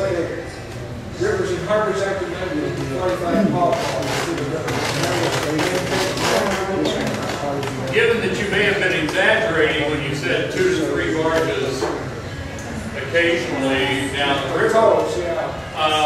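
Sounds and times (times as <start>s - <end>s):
indistinct talking in a room: 0.0s - 16.0s.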